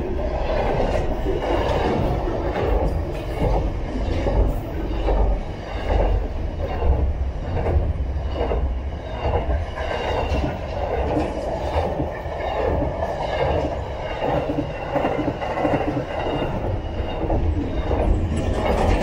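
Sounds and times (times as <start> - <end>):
train wagons rumbling: 0.0 - 19.0
steel wheels clattering on track: 0.5 - 19.0.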